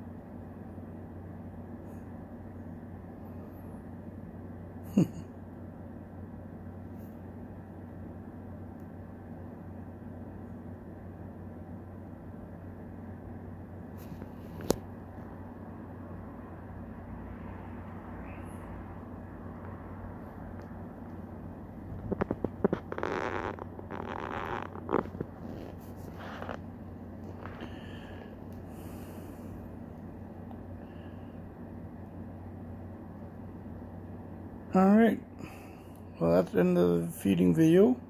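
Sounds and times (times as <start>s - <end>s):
low room hum: 0.0s - 38.0s
rustling and clicking: 21.8s - 27.7s.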